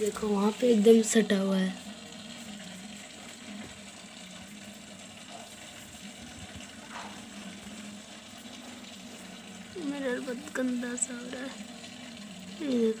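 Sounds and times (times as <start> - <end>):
aquarium filter water flowing: 0.0 - 13.0.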